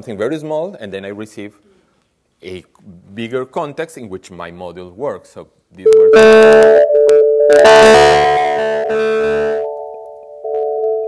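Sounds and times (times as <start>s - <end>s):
overlapping computer-generated tones: 5.9s - 11.0s.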